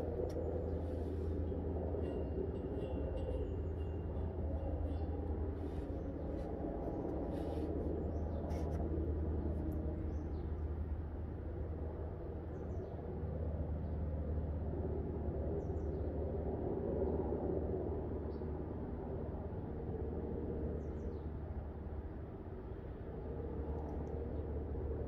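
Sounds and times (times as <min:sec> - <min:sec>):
low outdoor hum: 0:00.0 - 0:25.0.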